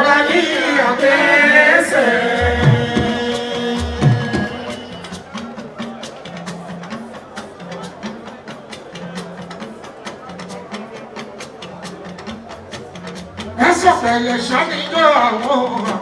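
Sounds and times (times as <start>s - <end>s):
rapid dense percussion: 1.8s - 16.0s
bass guitar line: 2.4s - 5.0s.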